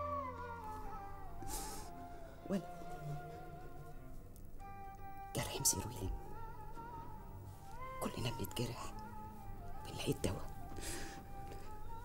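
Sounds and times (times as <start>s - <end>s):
soft background music: 0.0s - 12.0s
man sniffing: 1.4s - 2.0s.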